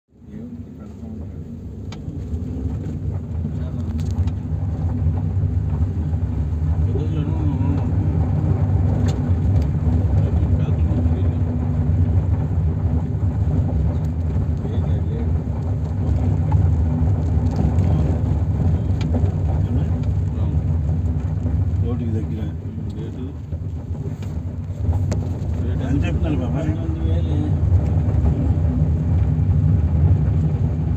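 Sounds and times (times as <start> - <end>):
car engine and tyres rumbling: 0.1 - 30.9.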